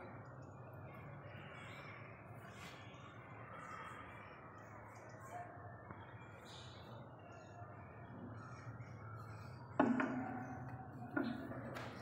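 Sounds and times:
sharp knocks: 9.8 - 12.0.

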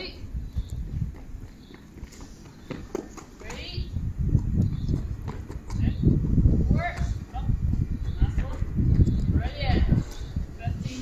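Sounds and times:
wind rumbling on microphone: 0.0 - 11.0
child running on concrete: 0.6 - 9.5.

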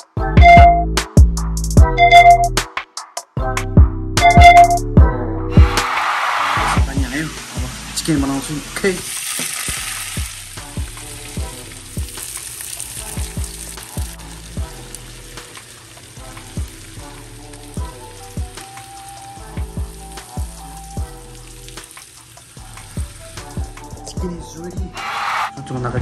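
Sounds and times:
background music with a beat: 0.0 - 7.9, 10.0 - 15.6, 16.2 - 26.0
chicken sizzling in a pan: 6.8 - 24.0.

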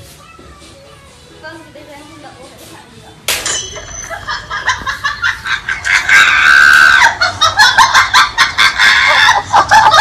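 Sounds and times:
shrill wailing cry: 5.8 - 7.4, 8.6 - 10.0.

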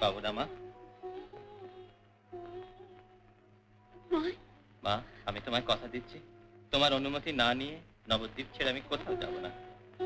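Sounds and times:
faint melodic background music: 0.0 - 10.0.

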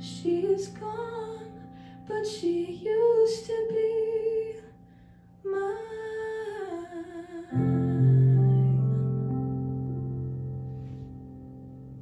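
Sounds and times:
woman singing a long note: 5.5 - 9.6.

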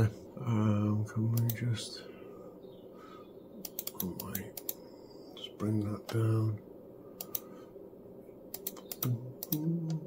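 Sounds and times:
computer mouse clicks: 1.3 - 1.7, 3.6 - 4.8, 7.2 - 7.5, 8.5 - 10.0.

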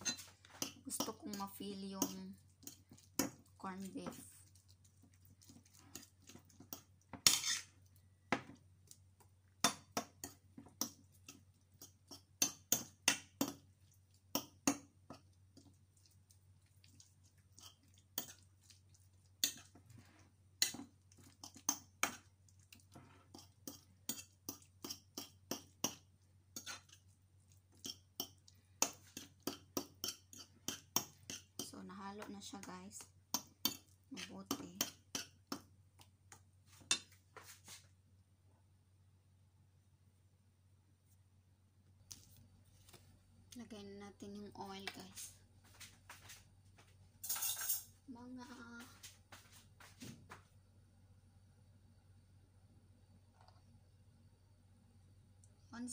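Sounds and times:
fork scraping ceramic plate: 5.4 - 7.8, 26.6 - 27.0
faint low hum: 37.9 - 55.9.

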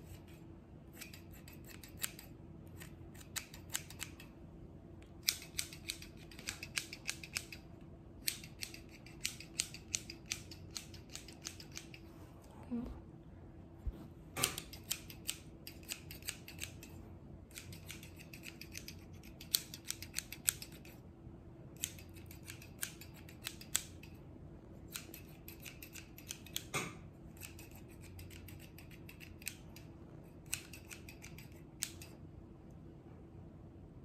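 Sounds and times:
scissors snipping hair: 0.0 - 4.4, 5.1 - 12.1, 14.4 - 21.0, 21.7 - 24.2, 24.8 - 32.2.

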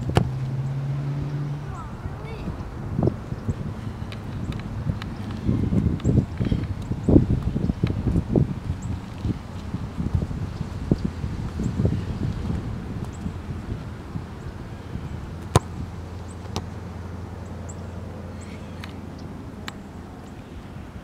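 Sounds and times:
low wind rumble: 0.0 - 21.0.

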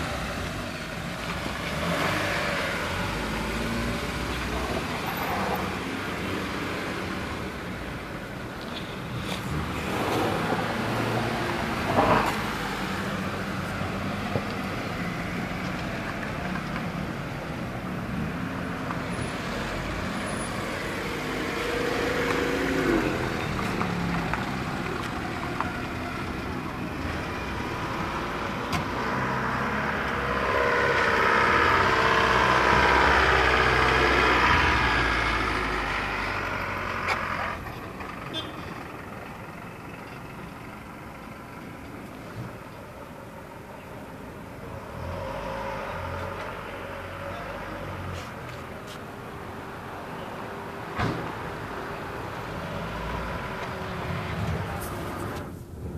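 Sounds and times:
car engine and road noise: 0.0 - 55.9.

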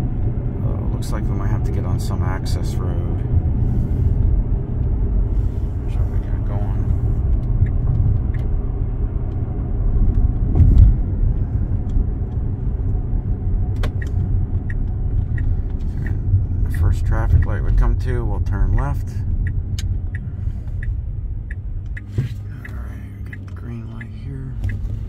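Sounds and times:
road and tyre noise in car: 0.0 - 25.0.

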